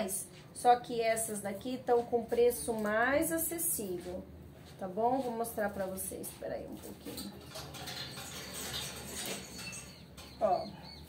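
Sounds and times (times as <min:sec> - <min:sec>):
wire hanger scraping: 0:06.8 - 0:10.6.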